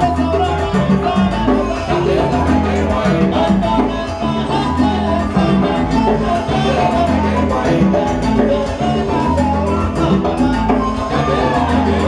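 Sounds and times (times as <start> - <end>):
live salsa band playing: 0.0 - 12.0.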